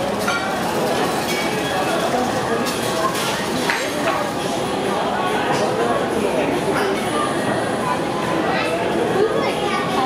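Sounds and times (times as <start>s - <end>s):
distant overlapping chatter: 0.0s - 10.0s
glassware and cutlery clinking: 0.2s - 4.2s, 6.7s - 7.1s.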